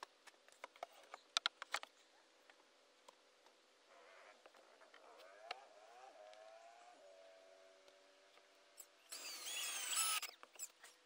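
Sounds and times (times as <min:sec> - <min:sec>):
high-pitched drill whine: 0:08.8 - 0:10.7
cordless drill driving screws: 0:09.1 - 0:10.4.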